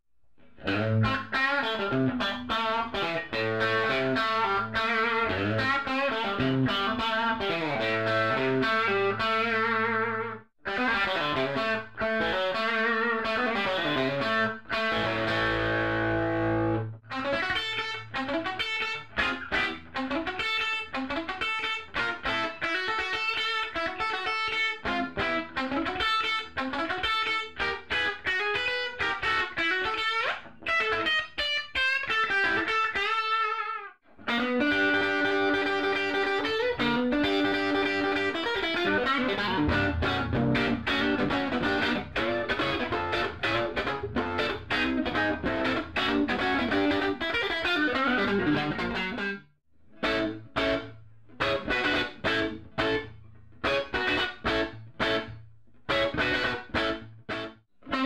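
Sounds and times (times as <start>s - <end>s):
electric guitar notes and chords: 0.4s - 58.0s.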